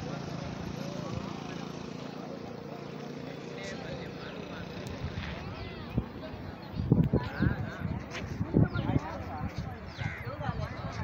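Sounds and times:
faint voices of people: 0.0 - 11.0.

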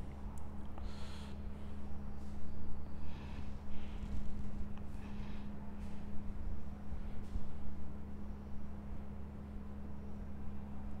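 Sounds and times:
low electrical hum: 0.0 - 11.0
person breathing: 0.8 - 1.4, 4.9 - 5.6.

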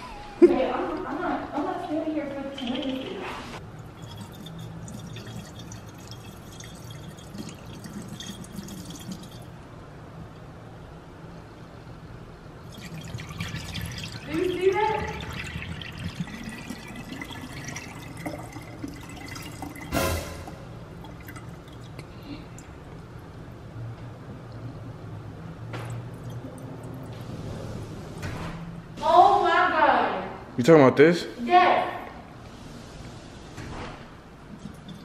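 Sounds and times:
liquid splashing into a sink: 2.6 - 9.5, 12.7 - 22.7
sharp knock: 19.9 - 20.6.

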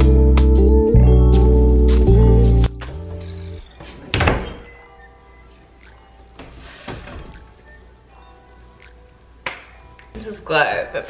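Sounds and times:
door closing thunk: 4.1 - 4.7.

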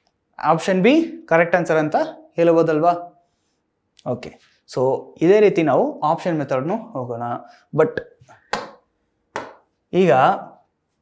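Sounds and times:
stylus tapping a screen: 8.0 - 9.8.

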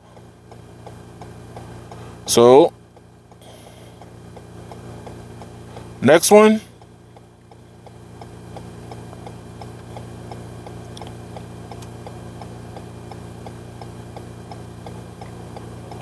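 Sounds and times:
low vehicle cabin hum: 0.0 - 16.0
regular ticking: 0.1 - 16.0.

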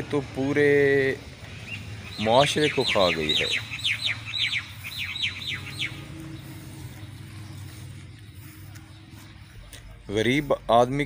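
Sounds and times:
bird chirping: 0.0 - 11.0.

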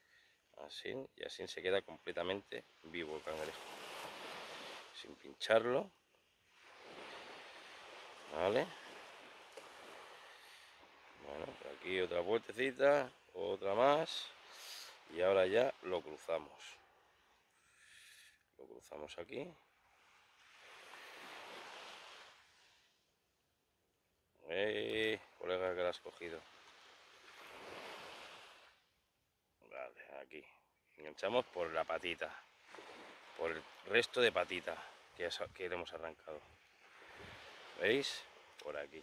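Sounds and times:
faint hiss of sea: 2.4 - 5.5, 6.4 - 18.5, 19.9 - 23.1, 24.8 - 29.0, 31.0 - 39.0.

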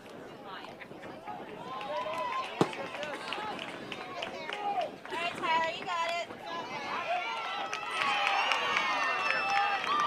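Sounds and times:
players and spectators shouting: 6.4 - 10.0.

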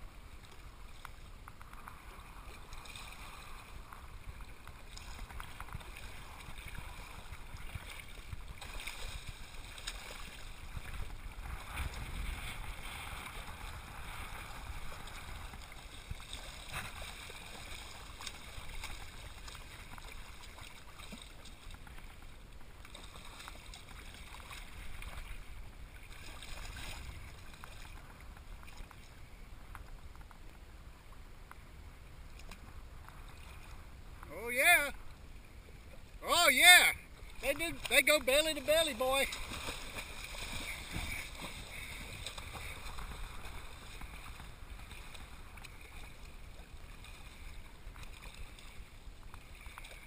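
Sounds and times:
sea water lapping and sloshing: 0.0 - 50.0
small splashes and drips: 39.3 - 50.0.

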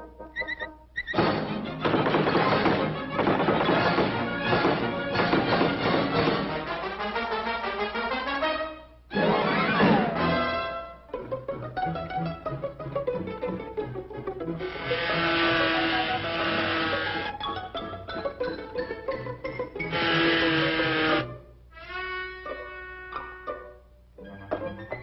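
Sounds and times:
orchestral cartoon music: 0.0 - 25.0.

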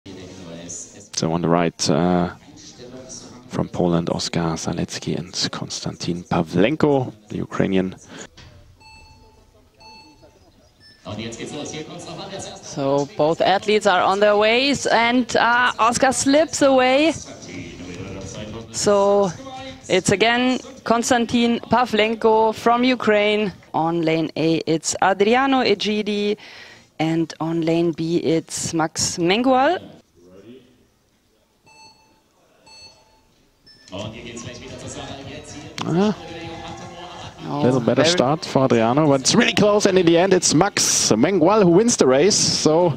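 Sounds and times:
electronic beeps: 8.6 - 12.2, 31.7 - 34.2.

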